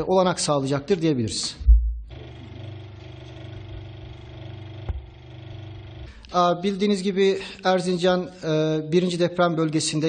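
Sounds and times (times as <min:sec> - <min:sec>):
steady mechanical hum: 0:02.1 - 0:07.2.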